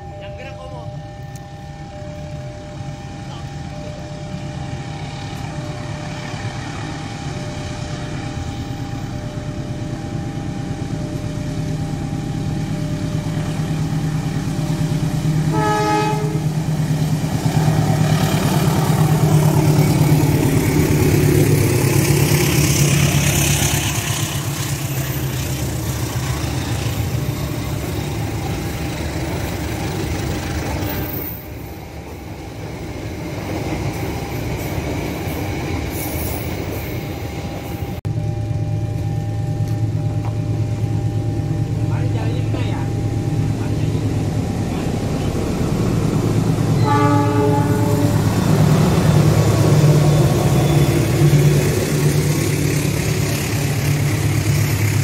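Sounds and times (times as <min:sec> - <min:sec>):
diesel train engine rumble: 0:00.0 - 0:55.0
train coaches on rails: 0:00.0 - 0:55.0
train horn blast: 0:15.4 - 0:16.8, 0:46.7 - 0:51.6.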